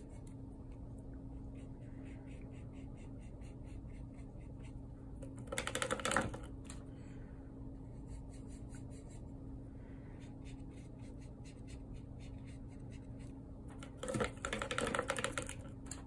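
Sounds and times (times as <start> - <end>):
paintbrush scraping paint: 10.2 - 15.5.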